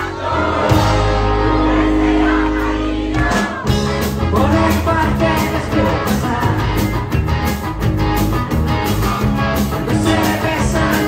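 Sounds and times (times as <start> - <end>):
voices singing: 0.0 - 7.0, 9.8 - 11.0
bass guitar: 0.0 - 11.0
electric guitars: 0.0 - 11.0.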